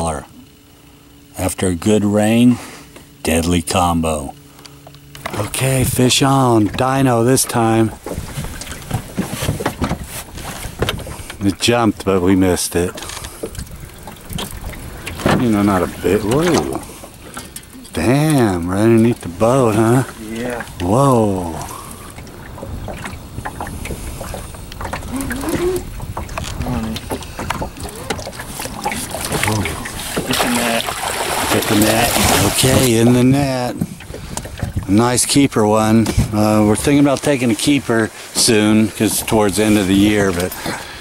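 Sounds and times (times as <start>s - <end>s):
water noise: 0.0s - 41.0s
knocks and handling noise: 8.0s - 11.3s
wind buffeting microphone: 13.4s - 17.4s, 18.6s - 37.0s
low voices and exclamations: 25.0s - 26.0s.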